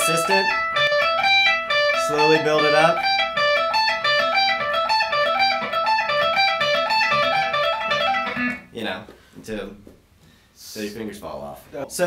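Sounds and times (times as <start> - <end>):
electric guitar lead lick: 0.0 - 8.7.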